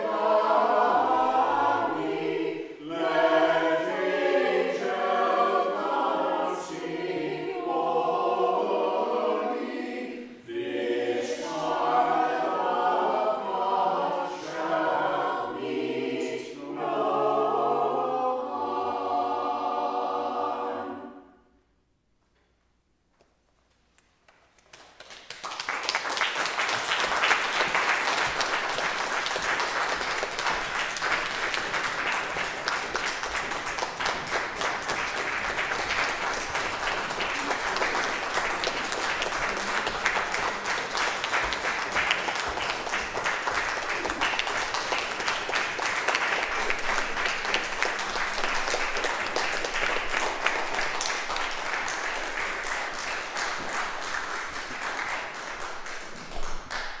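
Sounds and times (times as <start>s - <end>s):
audience applauding: 24.3s - 57.0s.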